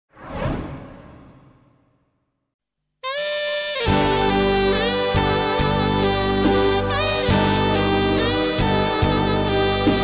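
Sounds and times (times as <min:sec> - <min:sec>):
whoosh sound effect: 0:00.1 - 0:02.2.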